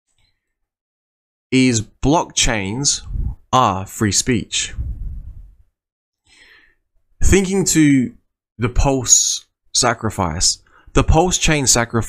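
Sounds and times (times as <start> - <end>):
man speaking: 1.6 - 5.0, 7.2 - 12.0
faint breath in: 6.2 - 6.9.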